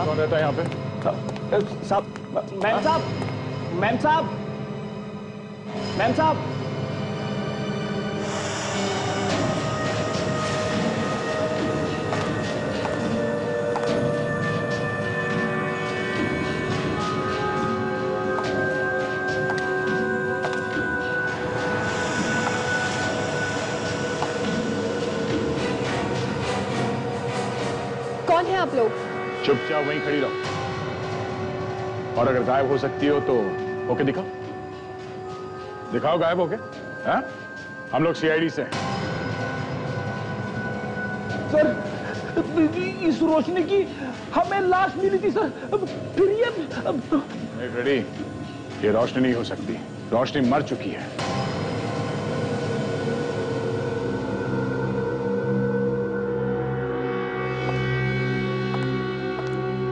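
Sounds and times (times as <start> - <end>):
dramatic rumbling drone score: 0.0 - 59.9.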